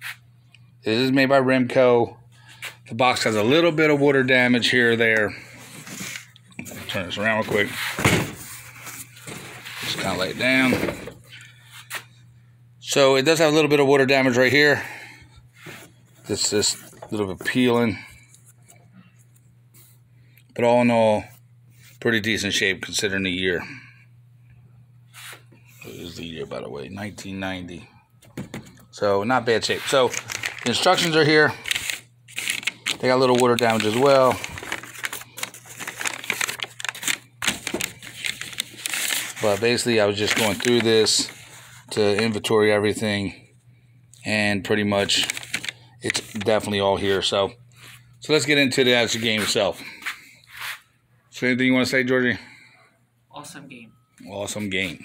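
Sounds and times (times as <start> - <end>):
paper crackling and rustling: 29.6 - 42.4, 45.0 - 47.2.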